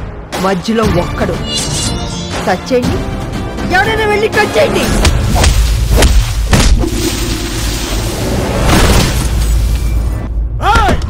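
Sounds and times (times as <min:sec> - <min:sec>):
trailer music: 0:00.0 - 0:10.6
rushing swell: 0:06.8 - 0:08.8.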